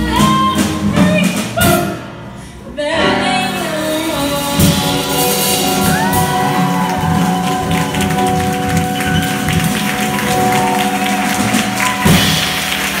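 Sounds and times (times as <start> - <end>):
jazz band playing: 0.0 - 13.0
drum and cymbal hits: 4.0 - 13.0.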